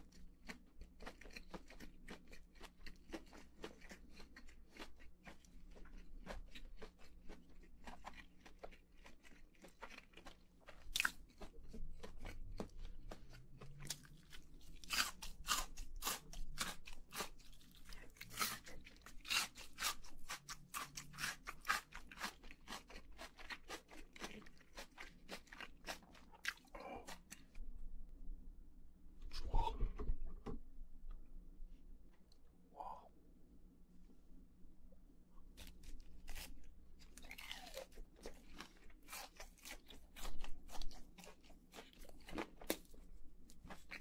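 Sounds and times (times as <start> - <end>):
crunchy food chewing: 0.0 - 27.6, 35.5 - 44.0.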